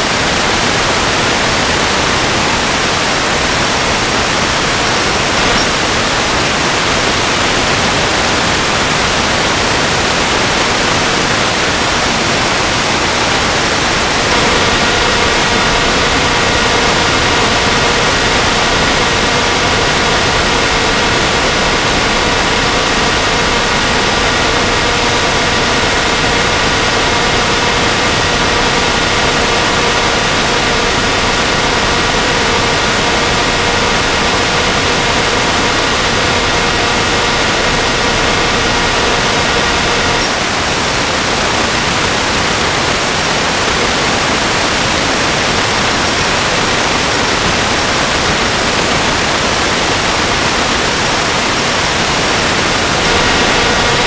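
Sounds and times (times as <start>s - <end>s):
loud steady hiss: 0.0s - 54.0s
multi-tone whine: 0.0s - 54.0s.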